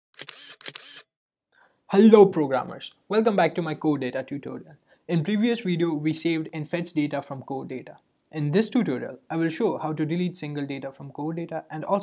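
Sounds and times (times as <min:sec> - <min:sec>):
man speaking: 0:01.9 - 0:12.0.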